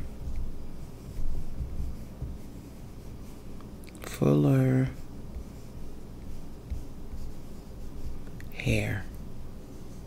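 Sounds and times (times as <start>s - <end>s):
fingertip rubbing glossy page: 0.0s - 10.0s
low steady hum: 0.0s - 10.0s.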